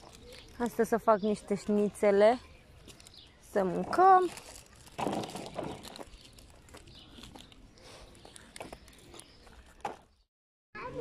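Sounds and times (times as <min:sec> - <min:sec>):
footsteps on asphalt: 0:04.2 - 0:10.2.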